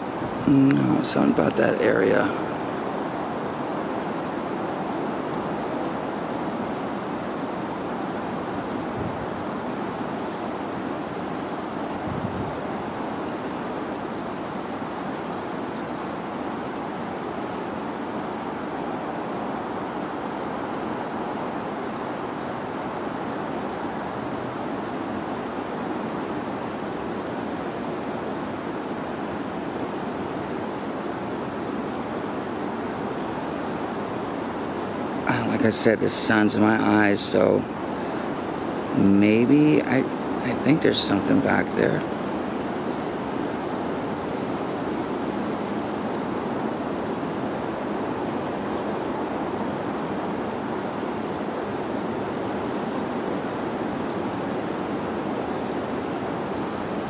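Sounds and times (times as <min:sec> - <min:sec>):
steady rushing noise: 0:00.0 - 0:57.0.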